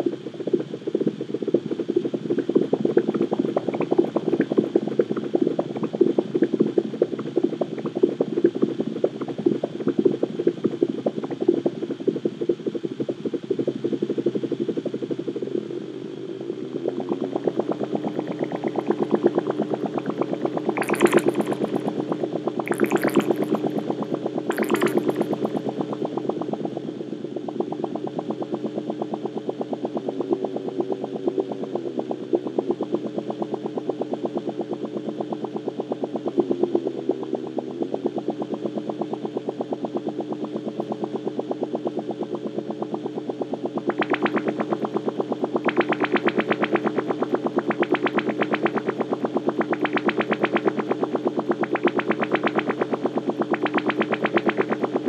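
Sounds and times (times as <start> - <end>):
electronic synthesizer music: 18.3 - 21.9, 22.6 - 23.9, 24.5 - 26.3.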